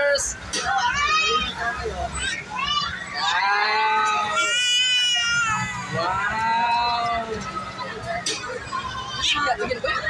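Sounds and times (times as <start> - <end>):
children calling out: 0.6 - 9.6.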